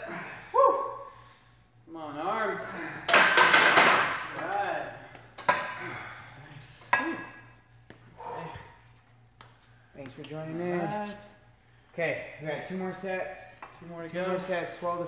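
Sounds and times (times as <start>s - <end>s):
man straining and exhaling: 0.0s - 1.4s, 5.5s - 7.4s.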